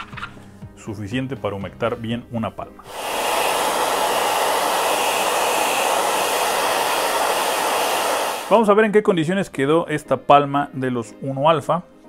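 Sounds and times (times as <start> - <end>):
hair dryer blowing: 2.8 - 8.7.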